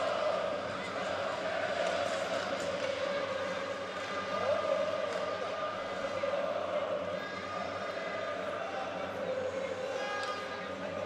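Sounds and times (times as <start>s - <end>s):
crowd chanting: 0.0s - 7.4s
hockey stick clacks: 1.8s - 3.2s.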